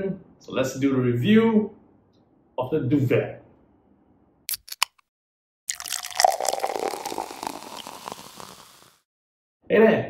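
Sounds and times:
beer foam fizzing: 0:05.7 - 0:09.0
beer pouring into a glass: 0:05.7 - 0:09.0.

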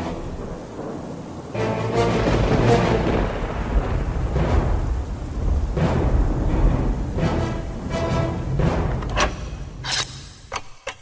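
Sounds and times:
rolling thunder: 0:00.0 - 0:09.8
quiet background music: 0:00.0 - 0:11.0
rain: 0:00.0 - 0:11.0.

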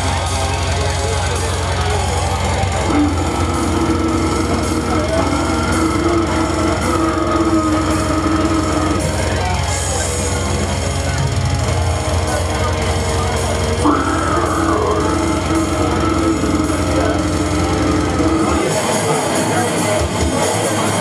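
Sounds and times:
death metal with distorted guitar: 0:00.0 - 0:21.0.

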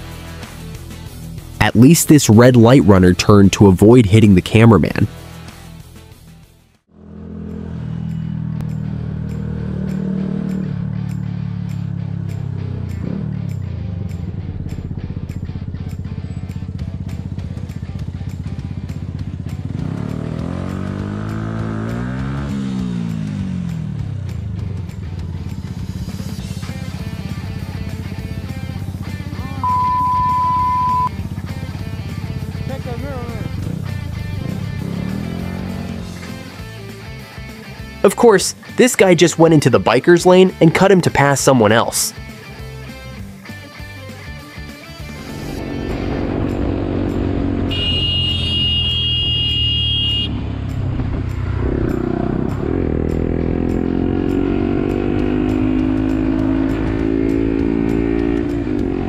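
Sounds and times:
motorcycle engine running: 0:06.9 - 0:37.9, 0:45.2 - 0:59.0
loud one-tone beep: 0:29.6 - 0:31.1, 0:47.7 - 0:50.3.

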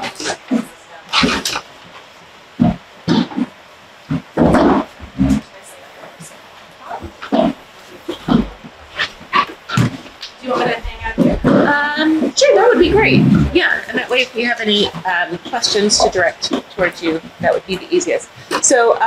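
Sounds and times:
murmured words: 0:05.2 - 0:07.3, 0:10.3 - 0:19.0.

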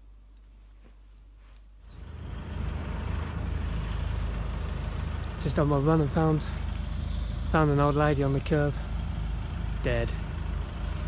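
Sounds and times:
vehicle engine idling: 0:01.8 - 0:11.0.

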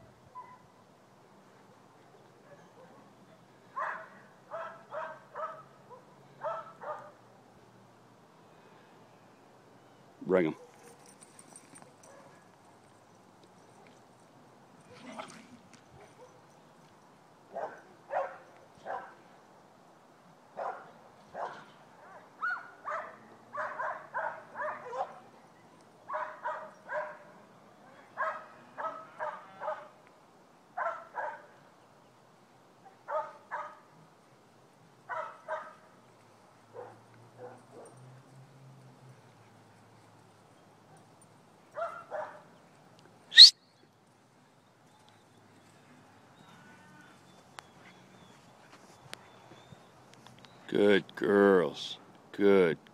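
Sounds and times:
dog barking: 0:03.8 - 0:07.2, 0:12.0 - 0:12.5, 0:17.5 - 0:19.2, 0:20.6 - 0:25.2, 0:26.1 - 0:27.3, 0:28.2 - 0:29.9, 0:30.8 - 0:31.6, 0:33.1 - 0:33.8, 0:35.1 - 0:35.8, 0:36.7 - 0:38.0, 0:41.8 - 0:42.5
sharp high-pitched rising sound: 0:43.3 - 0:43.6.

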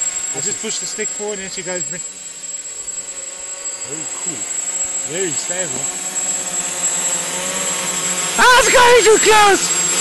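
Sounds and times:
drone propellers whirring: 0:00.0 - 0:10.0.

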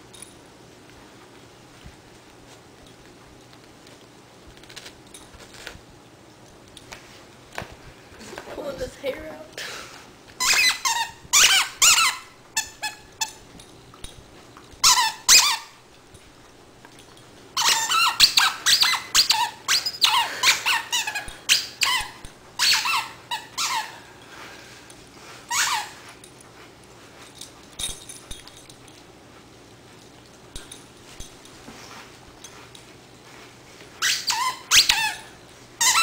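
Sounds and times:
dog toy squeaking: 0:10.4 - 0:13.4, 0:14.8 - 0:15.8, 0:17.6 - 0:24.0, 0:25.5 - 0:26.0, 0:34.0 - 0:36.0.

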